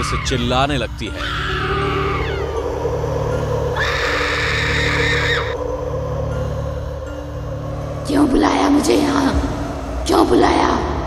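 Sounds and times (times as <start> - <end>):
low droning music: 0.0 - 11.0
woman screaming: 1.2 - 2.6, 3.8 - 5.6.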